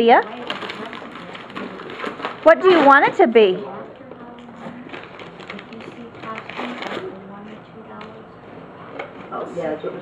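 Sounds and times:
adults talking quietly: 0:00.0 - 0:10.0
tissue paper crackling: 0:04.7 - 0:07.2.

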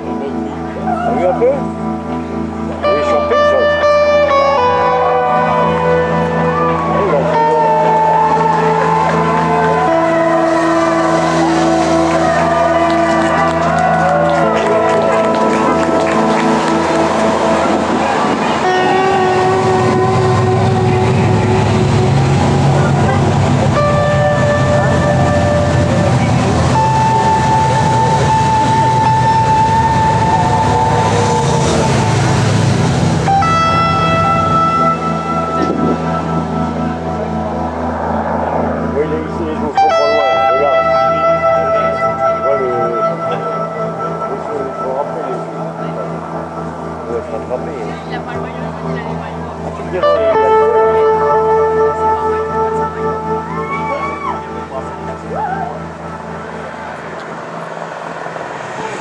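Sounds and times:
cars and motorbikes rumbling: 0:00.0 - 0:59.0
loud music with singing: 0:16.9 - 0:33.7.

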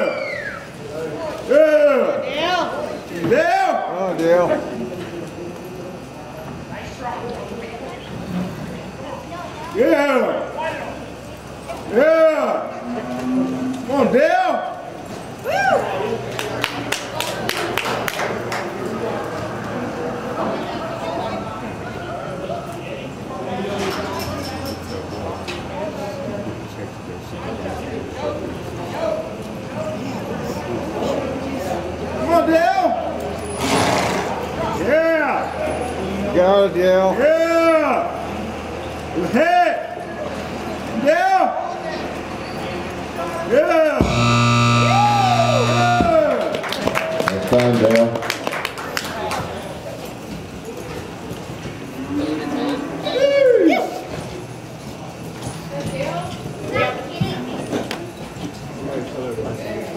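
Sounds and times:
spectators shouting: 0:44.0 - 0:46.6.

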